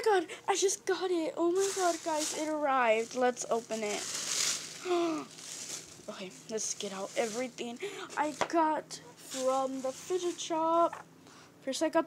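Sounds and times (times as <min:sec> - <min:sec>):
paper wrapping rustling: 0:01.4 - 0:10.9.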